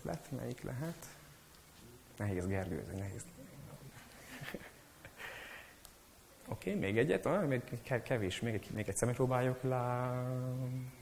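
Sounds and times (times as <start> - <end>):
person breathing out: 5.2 - 5.8.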